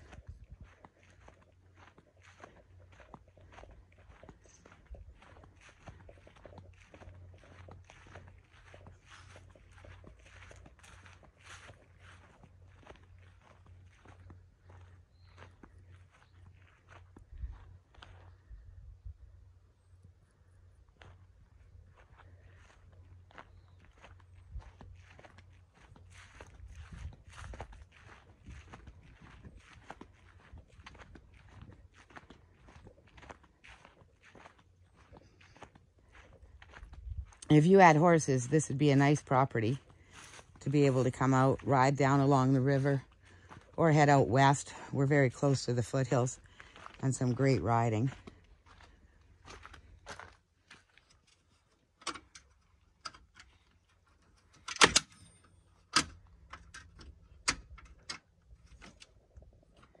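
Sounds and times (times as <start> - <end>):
footsteps on grass: 0.0 - 18.8, 19.4 - 52.0.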